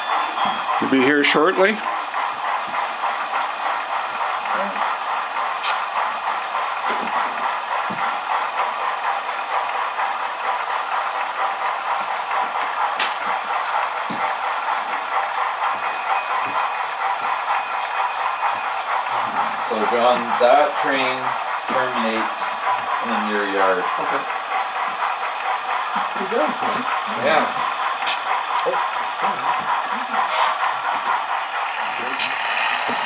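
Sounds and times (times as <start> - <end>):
model train running: 0.0 - 33.0.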